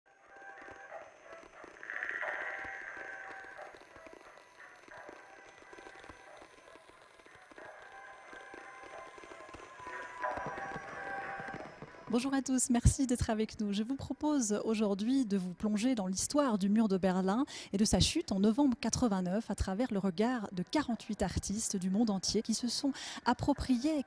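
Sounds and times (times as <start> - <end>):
atmospheric background music: 7.8 - 12.5.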